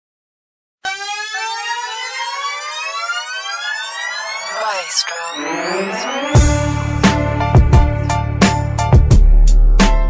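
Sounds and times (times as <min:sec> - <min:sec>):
rising siren-like tone: 0:00.8 - 0:07.4.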